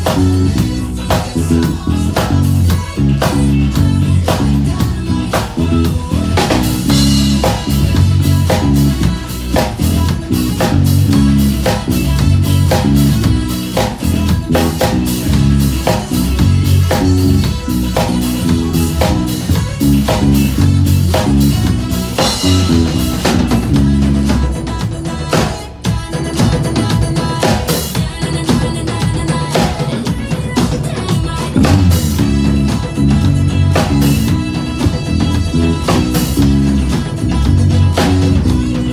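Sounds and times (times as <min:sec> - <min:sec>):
drum kit playing: 0:00.0 - 0:38.9
electric bass: 0:00.0 - 0:38.9.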